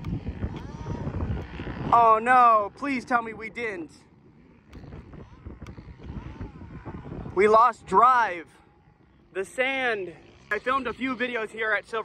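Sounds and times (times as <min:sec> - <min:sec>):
wind rumble on microphone: 0:00.0 - 0:09.9
distant two-stroke engine revving: 0:00.0 - 0:12.0.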